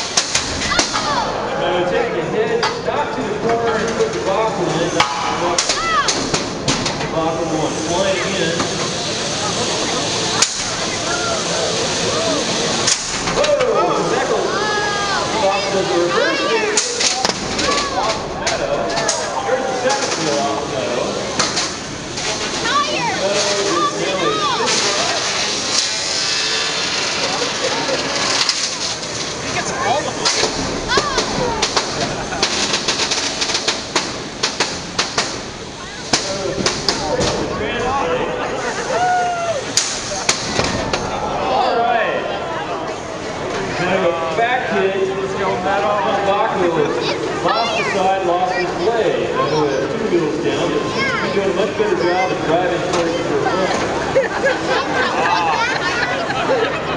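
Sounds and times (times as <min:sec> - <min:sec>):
people chattering: 0:00.0 - 0:56.9.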